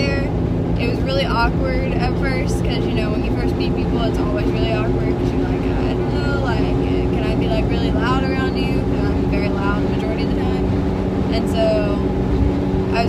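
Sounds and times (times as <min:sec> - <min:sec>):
woman talking: 0:00.0 - 0:10.7, 0:11.3 - 0:12.1
car engine and road hum: 0:00.0 - 0:13.0.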